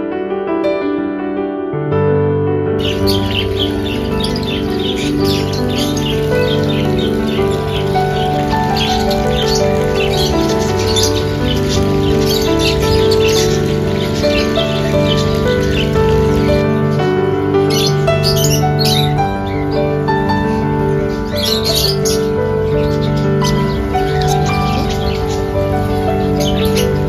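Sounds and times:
background music with held notes: 0.0s - 27.0s
parrots chirping: 2.8s - 17.0s, 17.6s - 27.0s.

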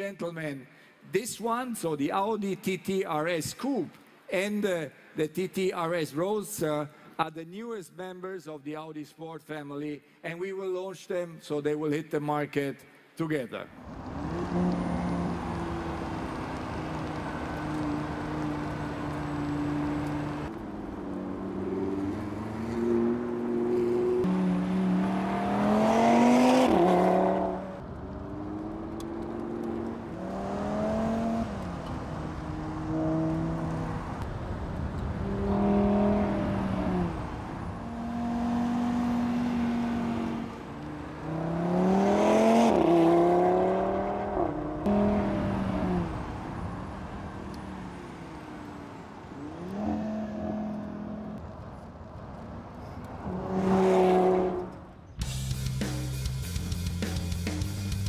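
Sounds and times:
car engine accelerating hard: 13.8s - 51.6s, 53.0s - 54.9s.

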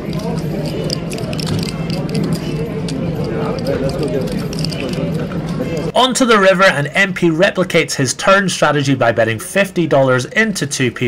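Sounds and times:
poker chips clicking: 0.0s - 5.9s
murmur of background chatter: 0.0s - 11.0s.

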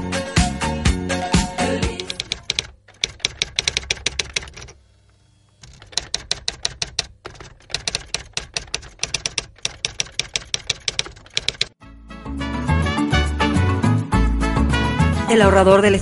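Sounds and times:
typewriter key strikes: 2.0s - 4.8s, 5.6s - 11.8s.

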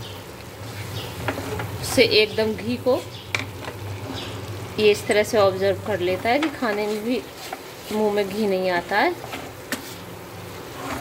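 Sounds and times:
faint sizzling: 0.0s - 11.0s
wooden spatula scraping a pan: 0.7s - 1.8s, 5.8s - 11.0s.

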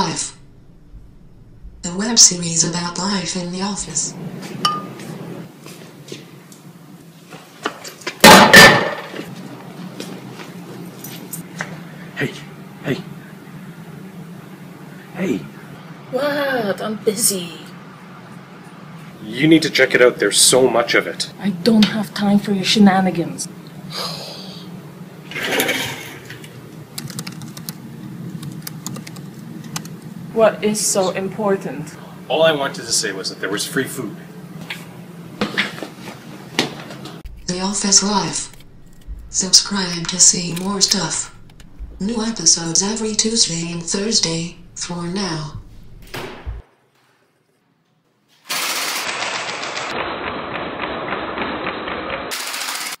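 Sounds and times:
laptop keyboard typing: 27.0s - 30.0s
loud rapid rattle of clicks: 48.5s - 53.0s.

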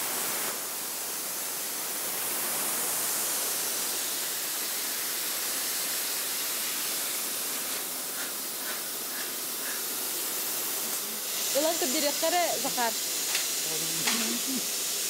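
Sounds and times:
plasma cutter hissing: 0.0s - 15.0s.

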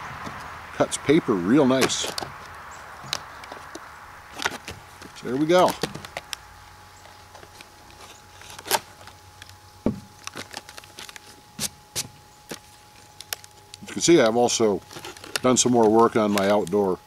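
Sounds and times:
plastic packaging crinkling: 1.5s - 17.0s.

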